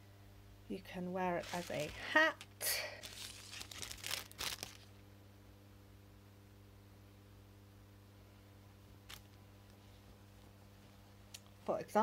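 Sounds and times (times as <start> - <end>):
plastic wrapping crinkling: 1.4 - 5.0, 9.0 - 9.8.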